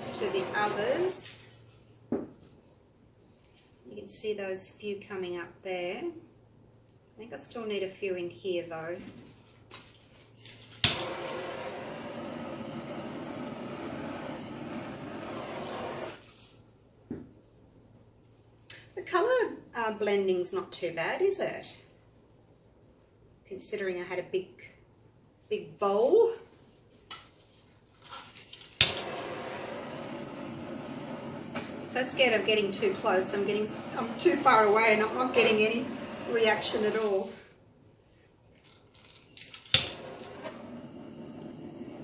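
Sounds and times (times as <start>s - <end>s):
torch flame hissing: 0.0s - 1.4s, 10.5s - 16.2s, 28.8s - 37.5s, 39.7s - 42.0s
torch igniter click: 10.8s - 12.0s, 39.7s - 41.1s.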